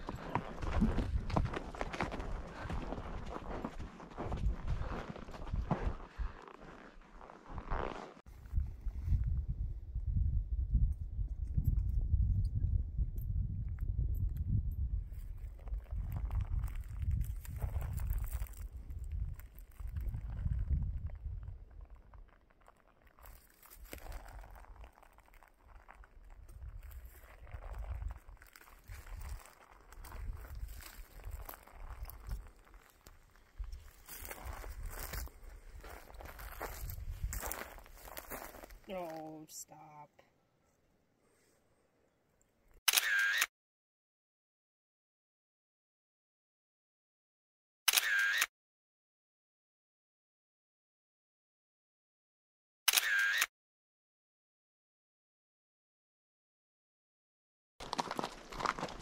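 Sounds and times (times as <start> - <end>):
hoof steps crunching on dirt: 0.0 - 8.2, 15.1 - 39.5, 57.8 - 59.0
wind rumble on microphone: 8.3 - 22.0, 33.6 - 38.1.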